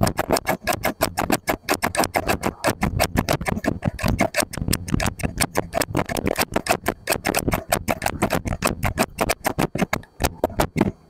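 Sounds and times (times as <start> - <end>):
scissors snipping: 0.0 - 10.9.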